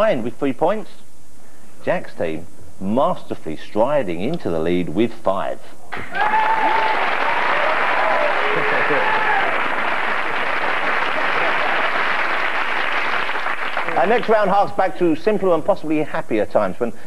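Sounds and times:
people cheering and whooping: 0:05.9 - 0:12.4
audience applauding: 0:05.9 - 0:14.5.

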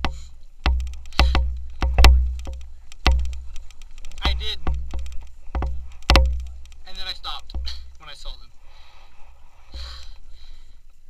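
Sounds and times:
sharp knocks: 0:00.0 - 0:08.0.

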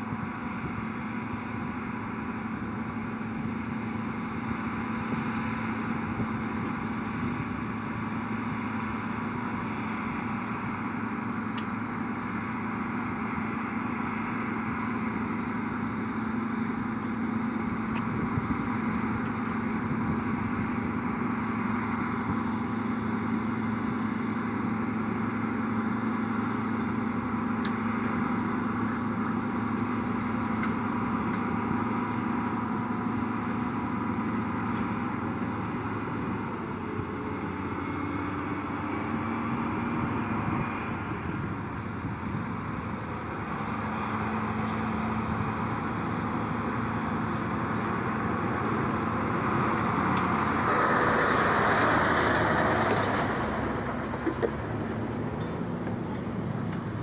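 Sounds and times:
bulldozer diesel engine: 0:00.0 - 0:57.0.

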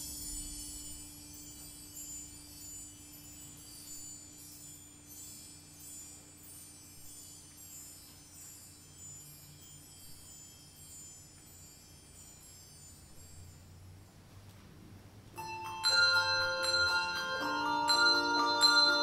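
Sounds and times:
high bells shimmering: 0:00.0 - 0:14.2, 0:15.4 - 0:19.0
low bell tone: 0:00.0 - 0:14.2, 0:15.4 - 0:19.0.

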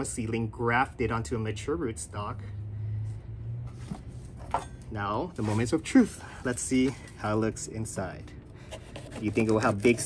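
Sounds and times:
knife on cutting board: 0:08.7 - 0:10.0.

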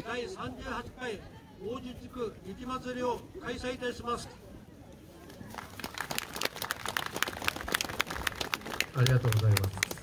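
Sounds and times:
scattered clapping: 0:05.5 - 0:10.0.

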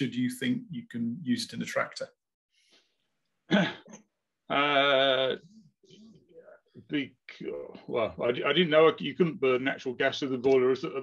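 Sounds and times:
man clearing his throat: 0:03.5 - 0:04.0.

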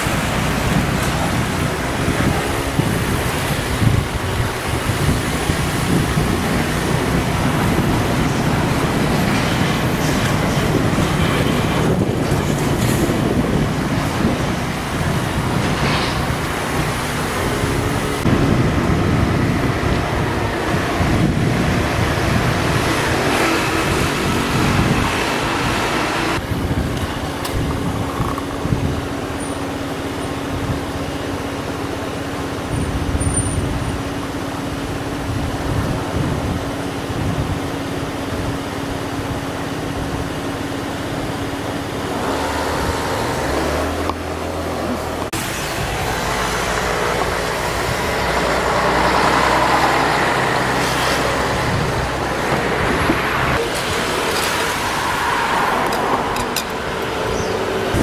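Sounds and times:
passing road vehicles: 0:00.0 - 0:58.0
steady low traffic hum: 0:00.0 - 0:58.0.

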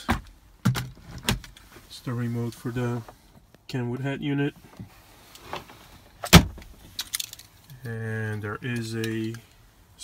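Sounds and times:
light clicks and rattles: 0:06.9 - 0:08.0.

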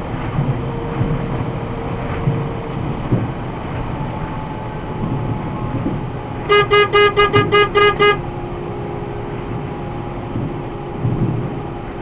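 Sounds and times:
truck road and engine noise: 0:00.0 - 0:12.0.

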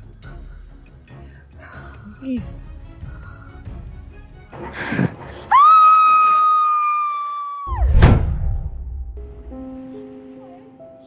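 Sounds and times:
deep boom hit: 0:07.7 - 0:09.7.

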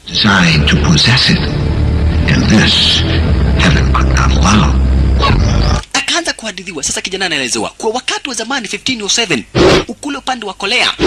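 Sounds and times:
loud deep rumble: 0:00.0 - 0:05.8
growl-like vocal sounds: 0:05.2 - 0:05.8.

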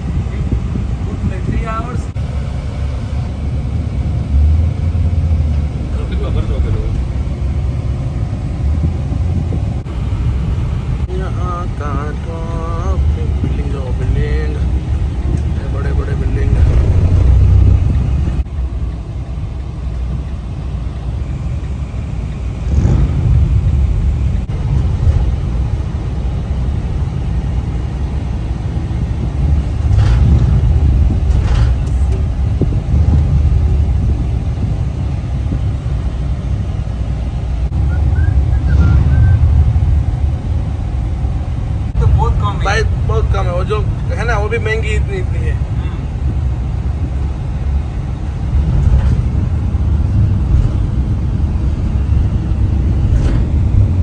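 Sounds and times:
car engine rumble from inside cabin: 0:00.0 - 0:54.0.

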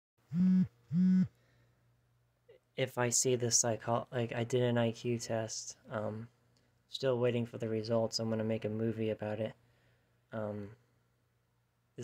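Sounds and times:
short low electronic beeps: 0:00.3 - 0:01.3.

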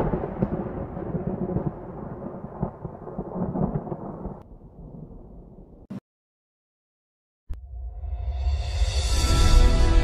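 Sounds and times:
low thunder-like rumble: 0:00.0 - 0:05.9.

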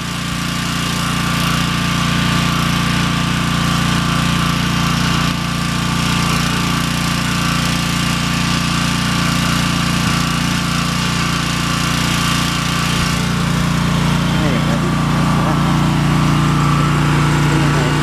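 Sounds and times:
pressure washer engine drone: 0:00.0 - 0:18.0.

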